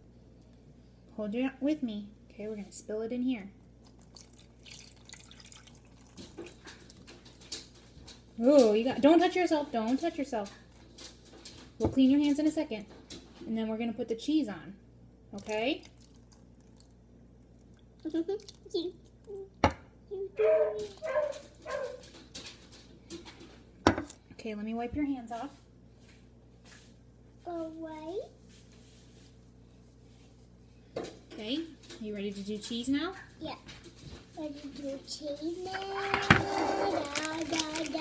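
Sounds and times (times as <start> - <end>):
liquid dripping and splashing: 3.8 - 8.3, 15.3 - 18.8
toddler vocalizing: 35.6 - 38.0.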